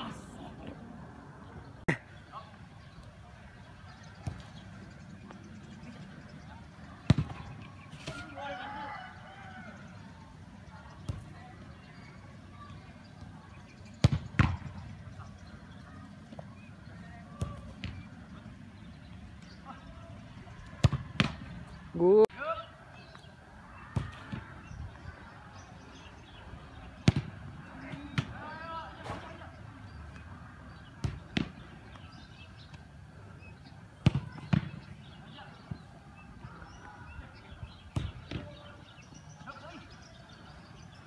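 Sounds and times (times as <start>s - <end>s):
soccer ball kick thuds: 7.0s - 8.2s, 13.9s - 15.3s, 17.3s - 18.1s, 20.7s - 21.5s, 23.9s - 24.6s, 27.0s - 28.4s, 30.2s - 32.8s, 34.0s - 34.9s, 37.8s - 38.6s.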